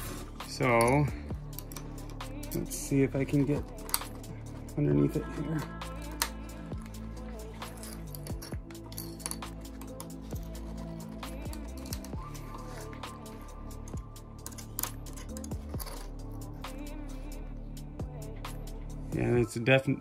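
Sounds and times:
background music with held tones: 0.0 - 20.0
screwdriver scraping on chip: 6.1 - 16.6.

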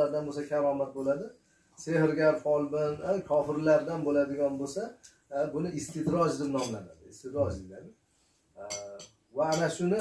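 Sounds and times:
man talking: 0.0 - 8.0, 8.6 - 10.0
dishes and cutlery clinking: 6.0 - 7.0, 8.6 - 10.0.

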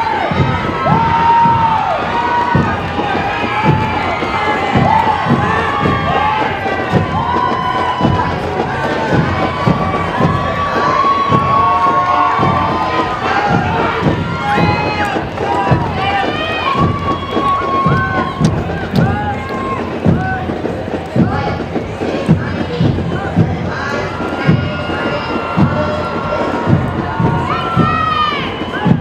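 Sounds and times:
crowd cheering and shouting: 0.0 - 29.0
low thumps: 0.0 - 29.0.

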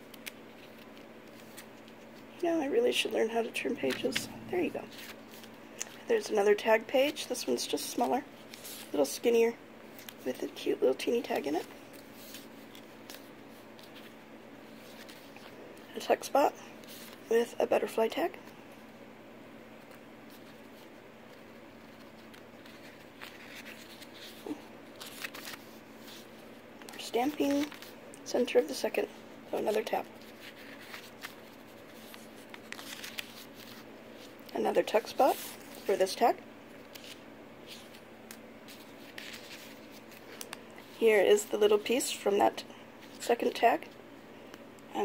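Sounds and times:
paper pages rustling: 0.0 - 2.3, 3.7 - 6.1, 7.0 - 9.0, 9.9 - 10.3, 11.2 - 15.6, 16.8 - 17.2, 19.8 - 28.0, 29.6 - 36.0, 36.7 - 41.0
low room hiss: 0.0 - 45.0.

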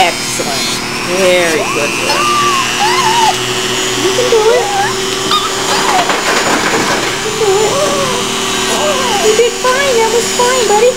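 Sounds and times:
electric grooming tool humming: 0.0 - 10.9.

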